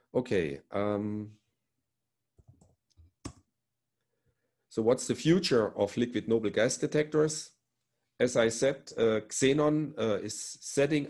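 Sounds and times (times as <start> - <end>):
computer mouse clicks: 2.4 - 3.4.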